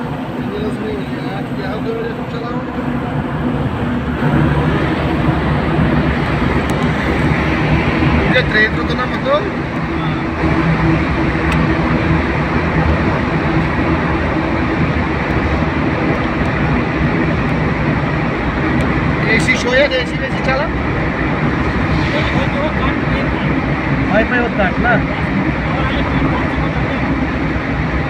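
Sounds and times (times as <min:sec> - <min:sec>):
engine and tyre noise: 0:00.0 - 0:28.0.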